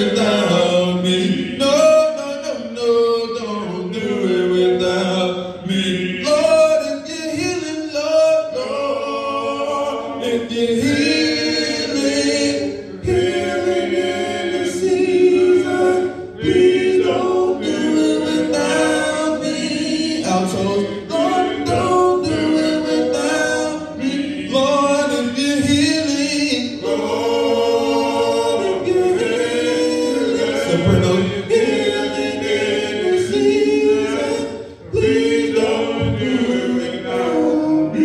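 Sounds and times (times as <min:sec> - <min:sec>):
group singing a hymn a cappella: 0:00.0 - 0:38.0.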